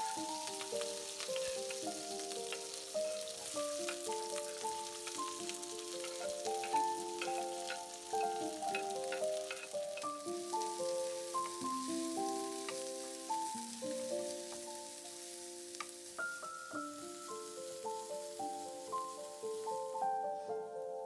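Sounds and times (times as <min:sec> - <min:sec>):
wooden spatula stirring: 0:00.0 - 0:13.2
oil spitting crackles: 0:00.0 - 0:19.8
food sizzling in hot oil: 0:00.0 - 0:21.0
melody of held notes: 0:00.0 - 0:21.0.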